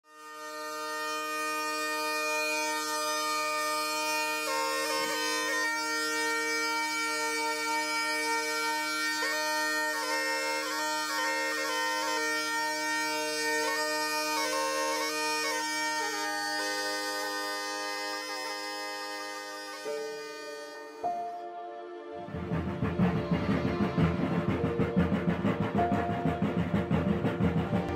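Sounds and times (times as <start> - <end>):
bagpipe melody with drones: 0.0 - 27.9.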